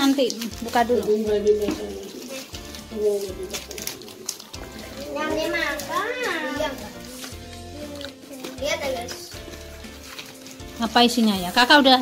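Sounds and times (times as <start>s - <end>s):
background music: 0.0s - 12.0s
wrapping paper rustling: 0.0s - 12.0s.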